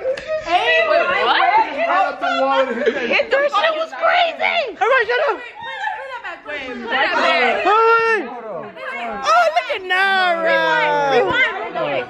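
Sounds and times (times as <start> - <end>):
people talking and exclaiming: 0.0 - 12.0.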